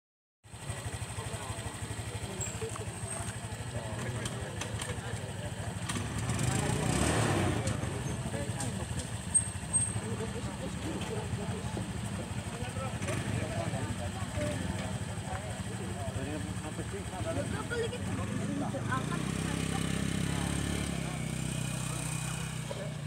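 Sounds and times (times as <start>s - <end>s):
vehicle engine running: 0.5s - 23.0s
people talking: 0.7s - 23.0s.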